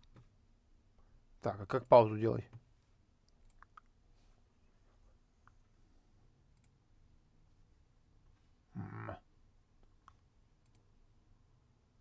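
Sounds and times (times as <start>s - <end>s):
computer mouse clicks: 3.3s - 3.9s, 6.6s - 6.8s, 9.8s - 10.9s.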